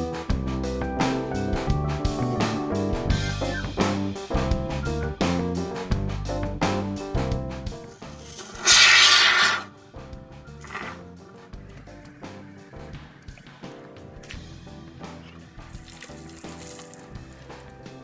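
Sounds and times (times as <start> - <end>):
instrumental music: 0.0 - 18.0
aerosol foam spraying hiss: 8.1 - 9.7.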